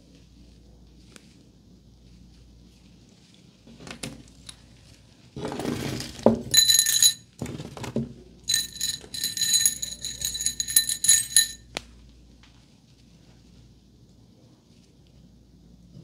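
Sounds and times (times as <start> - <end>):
hard objects clinking in container: 6.5 - 7.3, 8.5 - 11.6.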